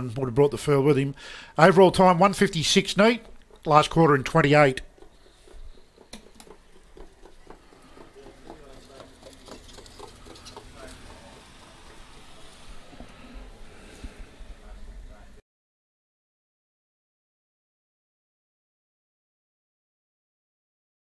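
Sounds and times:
distant voices: 0:01.6 - 0:15.4
soft irregular ticks: 0:02.3 - 0:14.2.

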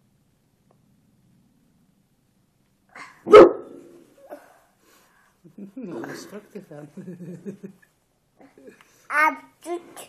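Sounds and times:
dog bark: 0:03.2 - 0:04.0.

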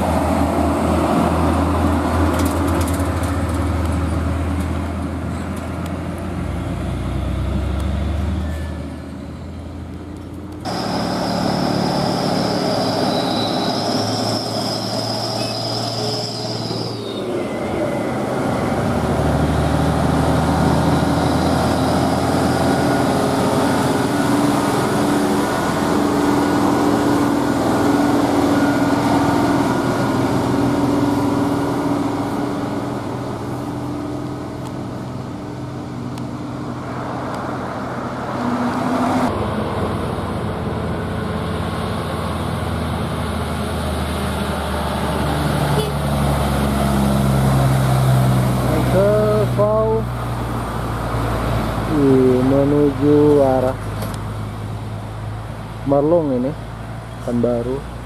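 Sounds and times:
diesel truck engine droning: 0:00.0 - 0:58.0.

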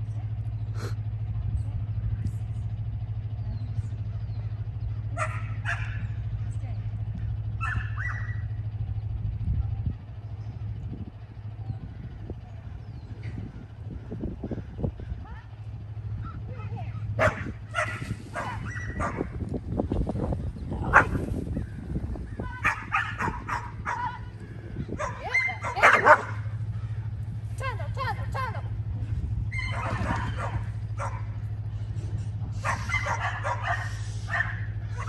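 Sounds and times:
dog barking and yipping: 0:05.2 - 0:06.1, 0:07.6 - 0:08.4, 0:17.2 - 0:19.4, 0:20.9 - 0:21.3, 0:22.3 - 0:24.3, 0:24.9 - 0:26.5, 0:29.5 - 0:31.4, 0:32.6 - 0:35.0.

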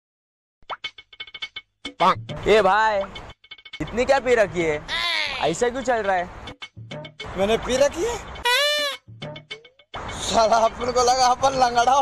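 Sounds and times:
person speaking: 0:03.8 - 0:06.3, 0:07.3 - 0:09.0
comic bleat sound effect: 0:08.4 - 0:09.0.

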